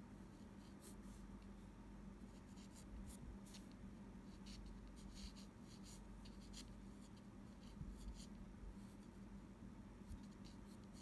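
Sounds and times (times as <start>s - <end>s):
low steady hum: 0.0s - 11.0s
pencil scratching on paper: 2.3s - 3.7s, 4.3s - 9.1s.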